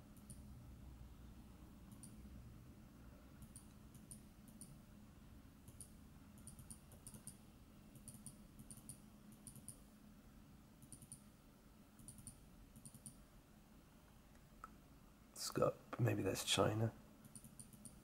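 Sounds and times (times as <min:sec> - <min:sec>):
computer mouse clicks: 0:01.9 - 0:02.2, 0:03.4 - 0:04.8, 0:05.6 - 0:09.8, 0:10.8 - 0:11.3, 0:12.0 - 0:13.2, 0:17.2 - 0:18.0.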